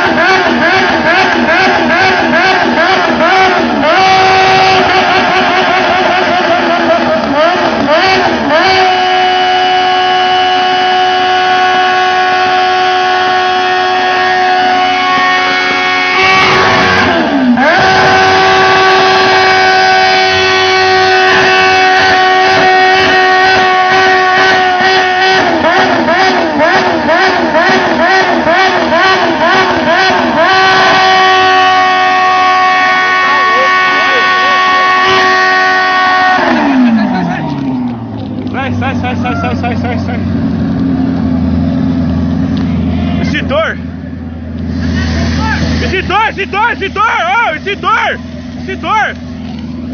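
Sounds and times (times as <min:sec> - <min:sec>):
motorcycle engine revving high: 0:00.0 - 0:49.9.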